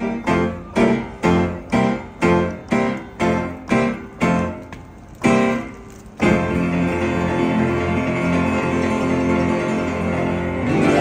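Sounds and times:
piano chords ringing: 0.0 - 11.0.

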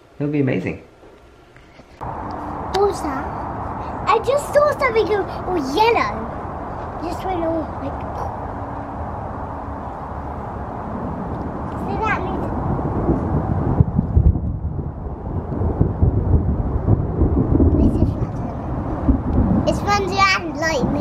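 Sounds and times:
thunder rumbling: 2.0 - 21.0.

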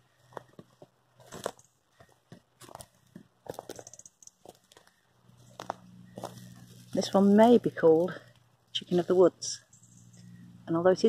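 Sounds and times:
footsteps crunching on dry leaves: 0.2 - 3.8, 4.4 - 8.1.

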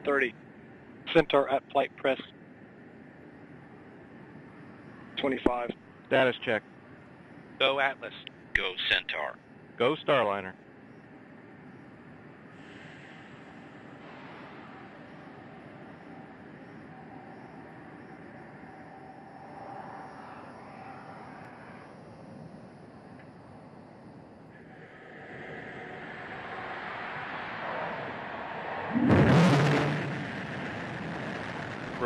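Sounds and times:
rushing rumbling outdoor noise: 0.0 - 32.0.

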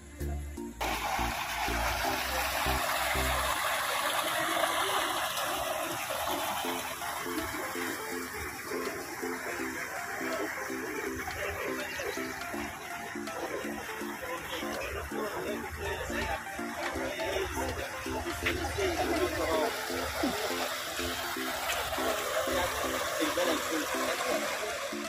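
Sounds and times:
stream water flowing: 0.6 - 25.0.

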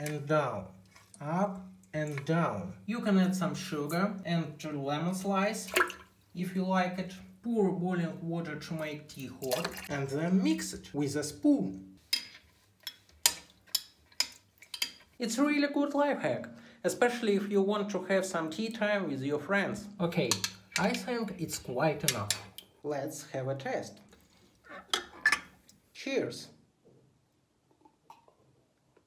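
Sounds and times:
spoon stirring water: 0.1 - 2.4, 8.7 - 10.0, 12.0 - 15.2, 20.2 - 22.8, 24.0 - 25.8
person gulping a drink: 27.6 - 29.0.

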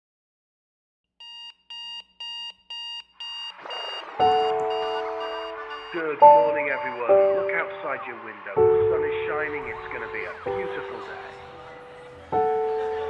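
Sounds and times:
alarm clock beeping: 1.2 - 8.8
music with sustained chord: 4.5 - 13.0.

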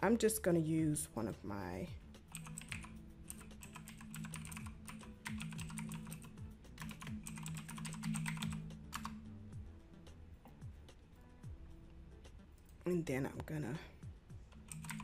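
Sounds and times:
computer keyboard typing: 2.3 - 9.2, 14.6 - 15.0.

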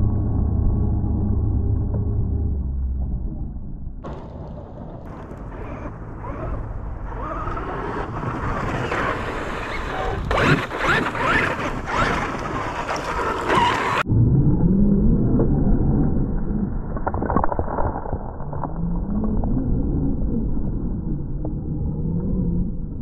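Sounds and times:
low rising tone: 0.0 - 23.0
tyres scrabbling on dirt: 4.0 - 14.0.

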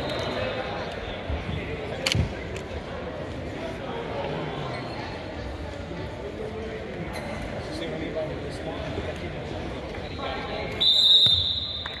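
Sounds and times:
crowd chatter: 0.0 - 12.0
referee's whistle blast: 10.7 - 12.0.

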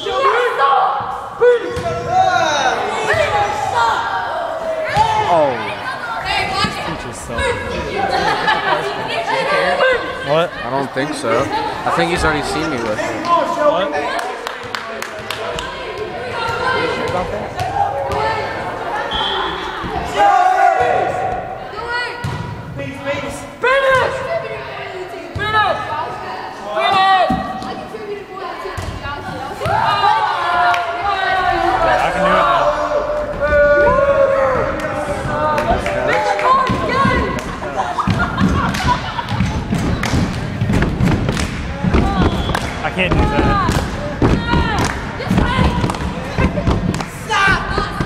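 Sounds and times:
voices calling and shouting: 0.0 - 40.7.

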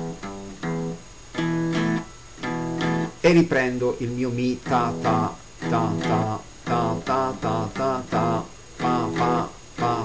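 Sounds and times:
guitar playing blues riff: 0.0 - 10.0.

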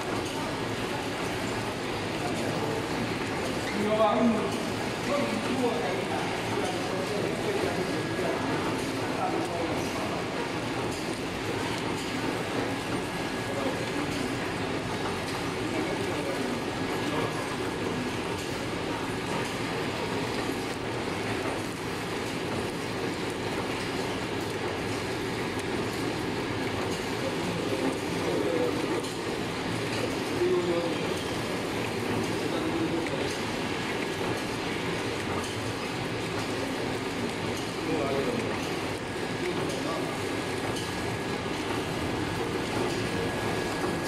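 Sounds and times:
packing machine running: 0.0 - 44.0.

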